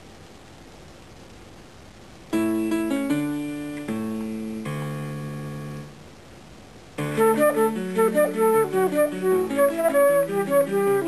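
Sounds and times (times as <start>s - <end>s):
piano chords: 2.3s - 6.1s, 7.0s - 11.0s.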